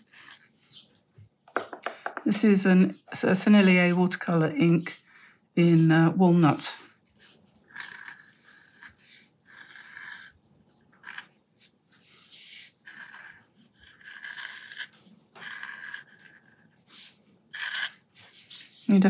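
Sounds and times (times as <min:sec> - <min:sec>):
pen nib scratching on paper: 0:06.9 - 0:10.4, 0:11.0 - 0:19.0.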